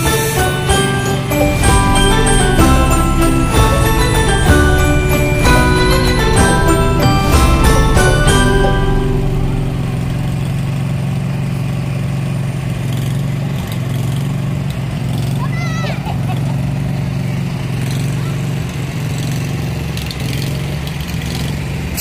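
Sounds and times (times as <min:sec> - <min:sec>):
vehicle engines running: 0:00.0 - 0:22.0.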